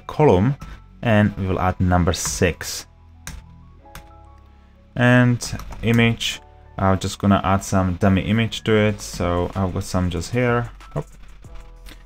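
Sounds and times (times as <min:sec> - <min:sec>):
quiet held-note music: 0:00.0 - 0:12.0.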